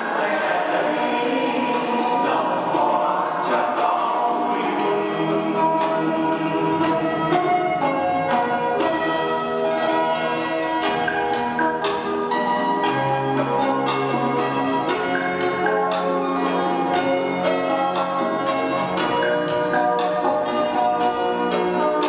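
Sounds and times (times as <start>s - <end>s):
chiming bells music: 5.4s - 22.0s.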